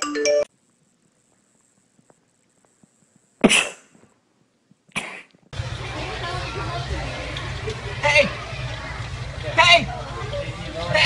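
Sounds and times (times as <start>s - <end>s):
marimba-like ringtone tune: 0.0s - 0.5s
faint ticks: 0.6s - 3.4s.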